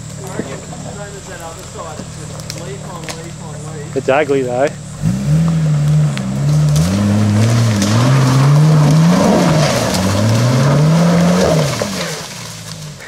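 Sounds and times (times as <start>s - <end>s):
engine revving under load: 0.0s - 13.0s
tyres scrabbling on loose dirt: 0.0s - 13.0s.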